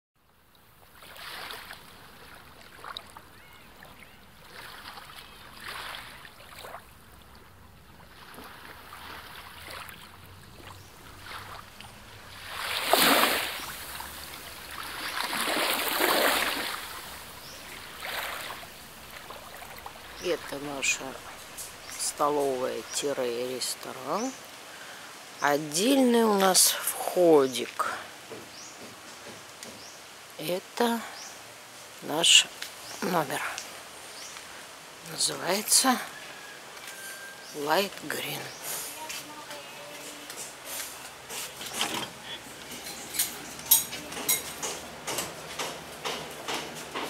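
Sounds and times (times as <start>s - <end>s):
faint outdoor ambience: 0.2s - 47.0s
sea waves washing: 0.7s - 28.3s.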